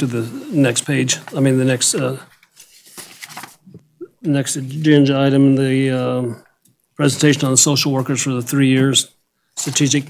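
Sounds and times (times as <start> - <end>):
person saying uh: 0.0 - 2.2
paper rustling and shuffling: 0.0 - 5.4, 7.0 - 10.0.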